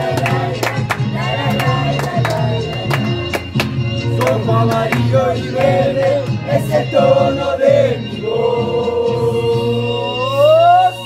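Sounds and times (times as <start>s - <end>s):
voices singing in chorus: 0.0s - 3.4s, 4.1s - 11.0s.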